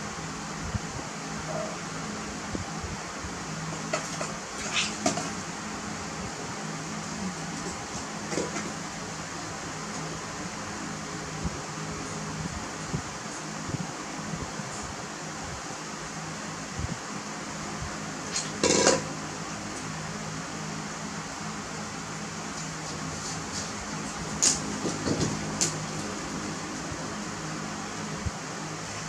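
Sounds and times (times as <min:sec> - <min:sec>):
machine hum and hiss: 0:00.0 - 0:29.0.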